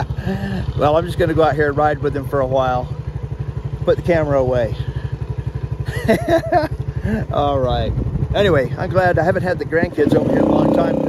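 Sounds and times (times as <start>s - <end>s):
atv engine idling: 0.0s - 11.0s.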